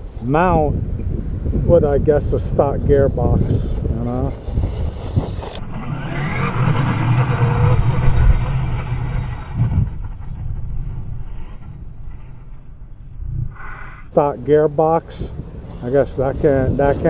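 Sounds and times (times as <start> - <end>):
wind on microphone: 0.0 - 17.0
electric motor whining: 2.9 - 17.0.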